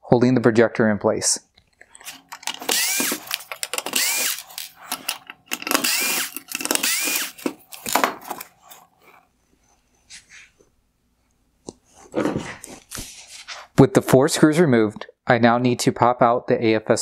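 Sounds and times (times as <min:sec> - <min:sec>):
electric screwdriver whining: 0:02.0 - 0:08.5.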